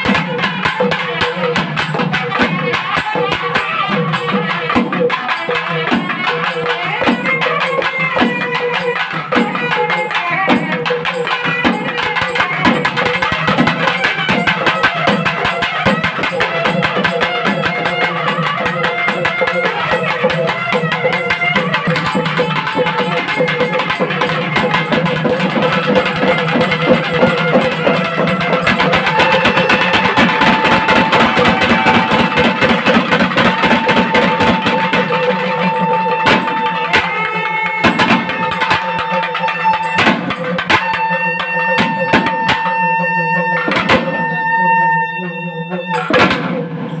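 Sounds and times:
barrel drums beating fast: 0.0s - 42.6s, 45.9s - 46.8s.

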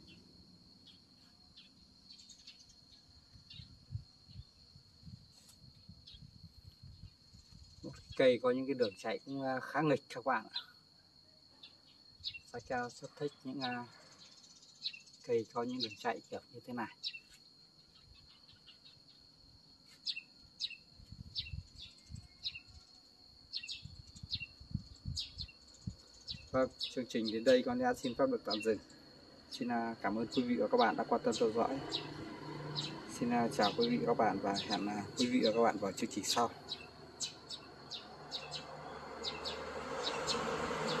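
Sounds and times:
high insect drone: 0.0s - 41.0s
small bird chirping: 0.8s - 4.6s, 5.4s - 8.2s, 11.6s - 16.2s, 16.9s - 19.2s, 19.9s - 22.9s, 23.5s - 41.0s.

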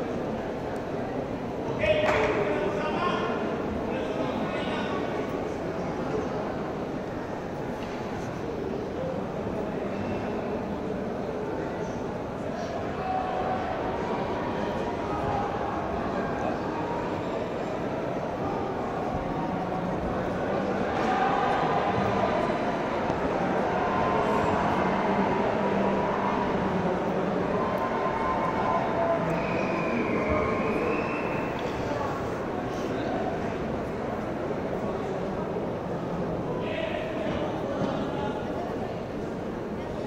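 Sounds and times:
exhibition hall din: 0.0s - 40.0s.

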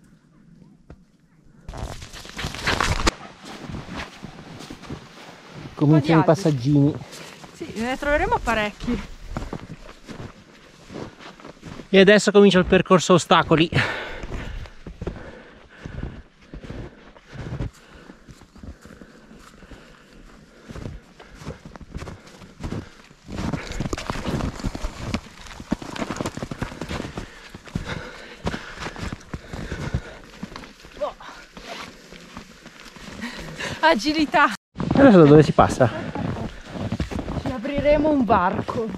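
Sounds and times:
brushing past snowy branches: 1.7s - 11.2s
footsteps crunching through snow: 1.7s - 38.9s.

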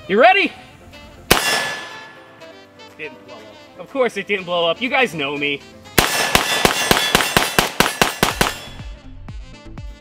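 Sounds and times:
background music: 0.0s - 10.0s
rifle firing rapid shots: 1.3s - 2.1s, 6.0s - 8.8s.

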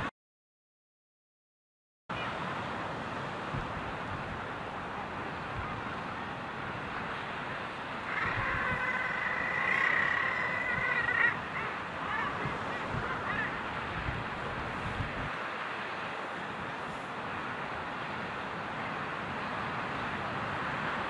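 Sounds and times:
seabirds calling: 7.9s - 14.4s.

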